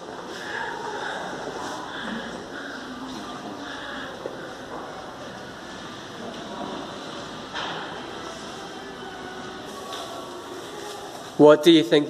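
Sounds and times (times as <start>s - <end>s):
faint indistinct voices: 0.0s - 12.0s
steady background hum: 0.0s - 12.0s.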